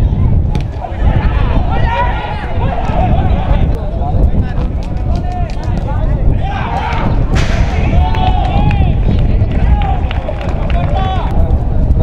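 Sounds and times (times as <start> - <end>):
players shouting calls: 0.7 - 3.7, 6.3 - 11.4
low rumble: 5.8 - 12.0.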